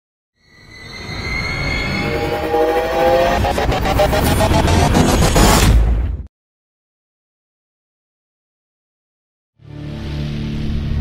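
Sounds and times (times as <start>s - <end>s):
cluster of lower tones: 0.5s - 4.9s
swelling rush of noise: 0.6s - 6.0s
high tone: 0.7s - 5.0s.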